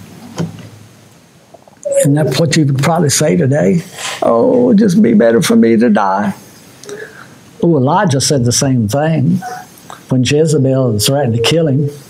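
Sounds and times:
man speaking: 1.9s - 12.0s.

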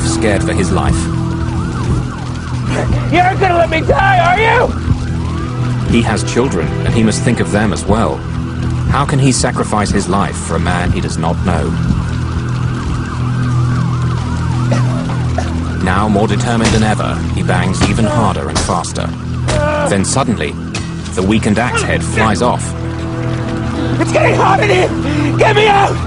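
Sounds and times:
emergency siren yelping: 0.0s - 9.0s, 10.3s - 26.0s
low music drone: 0.0s - 26.0s
siren in fast yelp mode: 0.4s - 6.0s, 12.0s - 16.0s, 21.6s - 22.8s.

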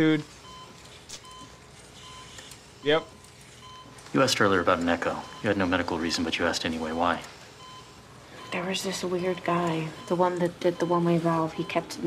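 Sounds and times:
cardiac monitor beeping: 0.0s - 12.0s.

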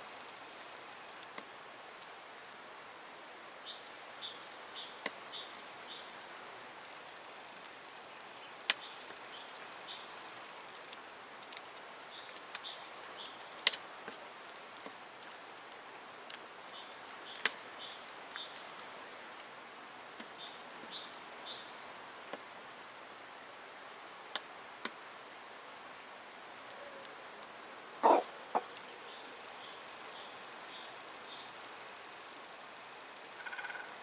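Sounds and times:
songbird singing: 3.5s - 14.2s, 16.6s - 19.2s, 20.2s - 22.1s, 28.0s - 32.4s
chickens pecking on wood: 8.7s - 19.5s, 26.4s - 28.9s.

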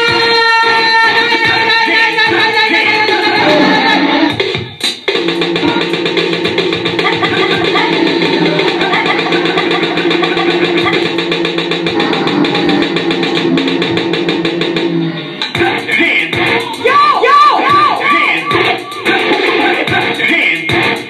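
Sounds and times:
instrumental electronic music: 0.0s - 21.0s.

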